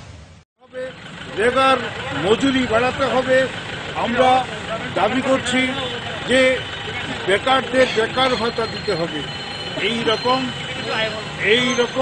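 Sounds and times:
man speaking loudly: 0:00.6 - 0:12.0.

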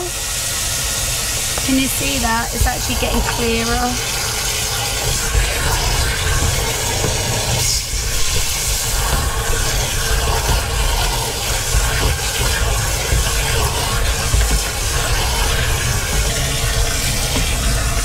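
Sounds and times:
water splashing in a tank: 0:00.0 - 0:18.0.

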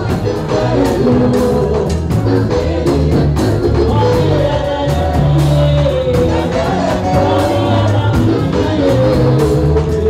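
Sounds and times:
band with bass and drums: 0:00.0 - 0:10.0
women singing gospel: 0:00.0 - 0:10.0.

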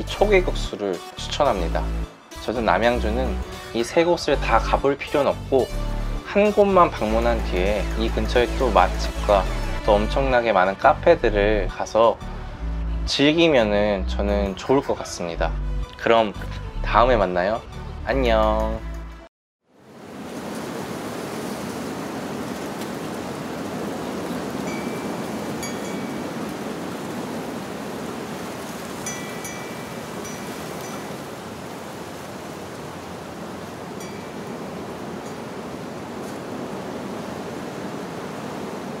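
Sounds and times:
faint chime tones: 0:24.6 - 0:26.5, 0:29.0 - 0:31.2, 0:34.0 - 0:34.6.

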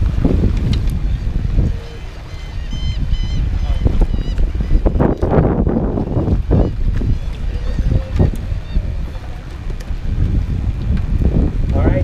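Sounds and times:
choppy water: 0:00.0 - 0:12.0
wind buffeting microphone: 0:00.0 - 0:12.0.

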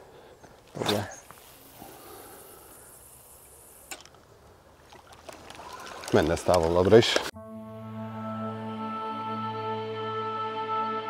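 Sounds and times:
soft steady hiss: 0:00.0 - 0:07.2.

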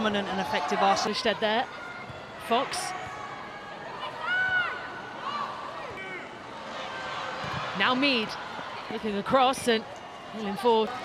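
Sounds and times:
stadium crowd ambience: 0:00.0 - 0:11.0.

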